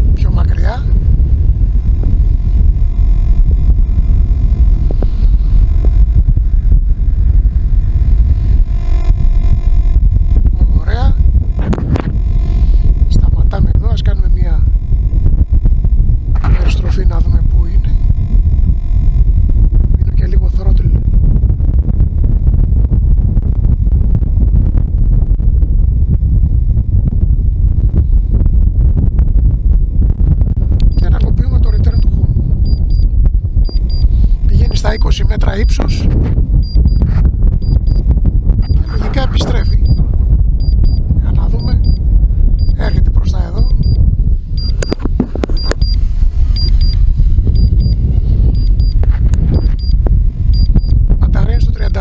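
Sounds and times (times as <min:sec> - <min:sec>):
gusty wind buffeting microphone: 0:00.0 - 0:52.0
short high beeps: 0:32.7 - 0:33.1, 0:40.6 - 0:41.0, 0:43.6 - 0:44.0, 0:44.6 - 0:45.0, 0:45.6 - 0:46.0, 0:46.6 - 0:49.0, 0:49.6 - 0:51.0.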